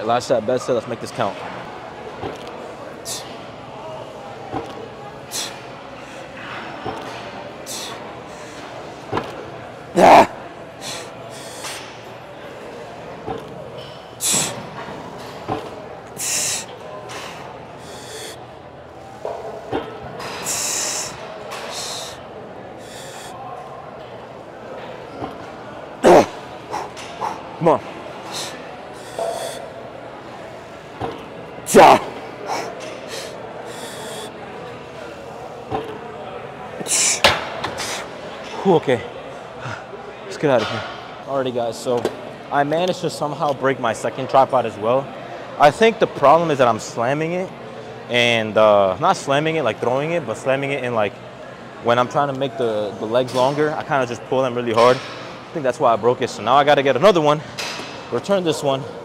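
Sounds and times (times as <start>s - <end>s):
gym background noise: 0.0s - 59.0s
man breathing with hissing exhalations: 5.3s - 6.3s, 7.7s - 8.7s, 10.2s - 11.8s, 16.2s - 18.4s, 20.3s - 22.2s, 22.8s - 23.4s, 28.2s - 29.7s, 32.5s - 34.4s, 36.8s - 37.2s
man grunting: 10.0s - 10.4s, 26.0s - 26.4s.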